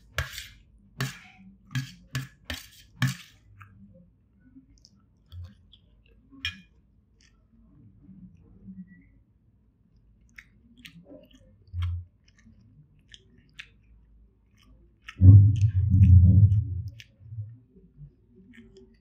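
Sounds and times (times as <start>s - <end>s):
mouth chewing food: 10.0s - 19.0s
low muffled thump: 15.2s - 17.5s.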